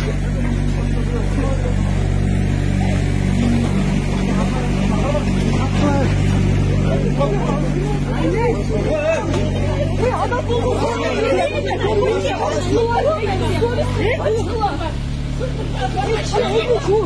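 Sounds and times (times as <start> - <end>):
crowd shouting and arguing: 0.0 - 17.0
diesel engine running: 0.0 - 17.0.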